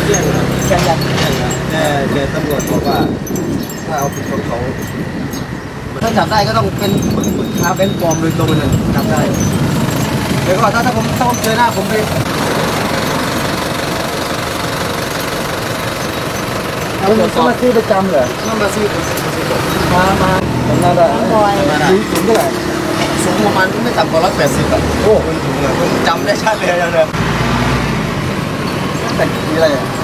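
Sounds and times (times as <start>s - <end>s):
truck engine idling: 0.0s - 27.1s
road traffic rumble: 0.0s - 30.0s.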